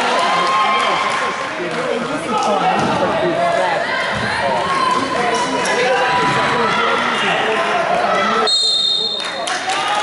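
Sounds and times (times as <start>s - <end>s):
echoing chatter: 0.0s - 10.0s.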